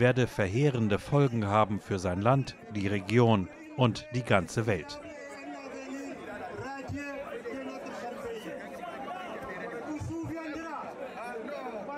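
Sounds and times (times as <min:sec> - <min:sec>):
crowd hubbub: 0:00.0 - 0:11.9.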